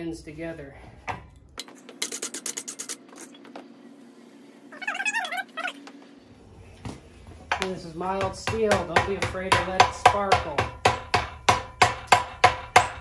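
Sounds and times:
wavering high-pitched cry: 4.7 - 5.8.

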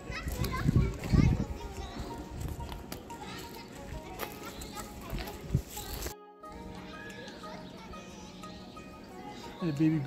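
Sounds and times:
background music: 0.0 - 10.0
children calling and chattering: 0.0 - 10.0.

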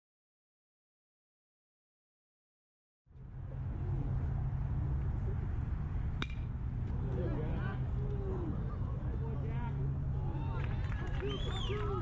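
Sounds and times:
metal bat hitting ball: 6.2 - 6.6.

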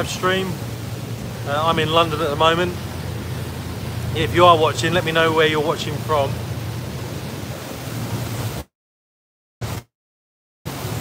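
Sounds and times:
low steady hum: 0.0 - 8.6
wind rushing on microphone: 0.0 - 8.7.

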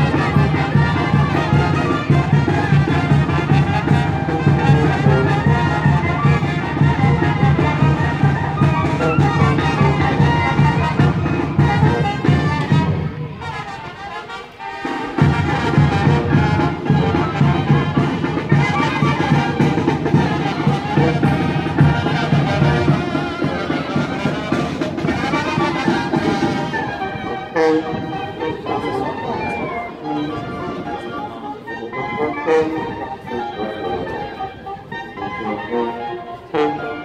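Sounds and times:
brass band playing: 0.0 - 37.0.

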